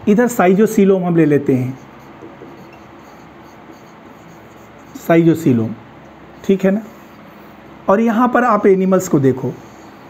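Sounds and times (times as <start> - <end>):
marker writing on whiteboard: 1.6 - 5.1.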